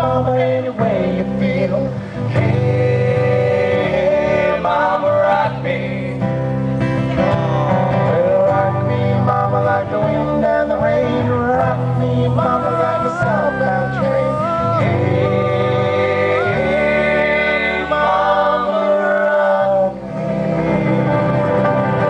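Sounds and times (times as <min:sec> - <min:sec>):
man singing into a microphone: 0:00.0 - 0:06.2, 0:07.5 - 0:21.3
acoustic guitar strummed: 0:00.0 - 0:22.0.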